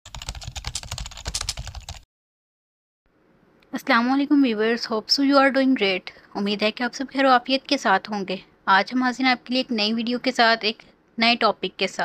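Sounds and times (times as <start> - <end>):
rapid keyboard typing: 0.1 - 2.0.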